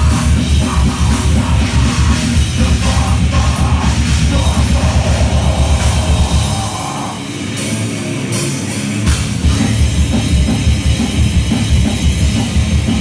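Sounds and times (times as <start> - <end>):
grindcore band playing live: 0.0 - 13.0.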